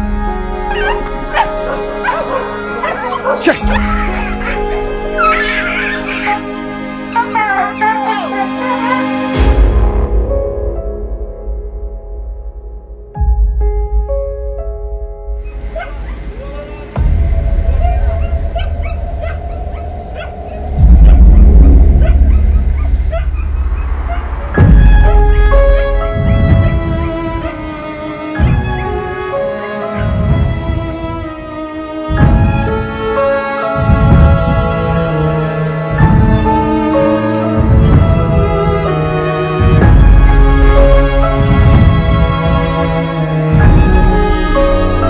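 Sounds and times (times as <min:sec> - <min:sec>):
soft background music: 0:00.0 - 0:45.0
dogs whimpering and yelping: 0:00.7 - 0:09.0, 0:15.5 - 0:17.0, 0:17.6 - 0:24.6.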